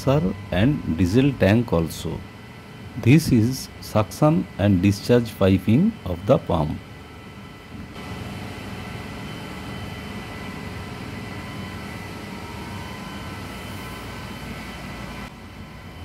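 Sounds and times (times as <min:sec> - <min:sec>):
faint high whine: 0:00.0 - 0:16.0
pump machinery humming: 0:00.0 - 0:16.0.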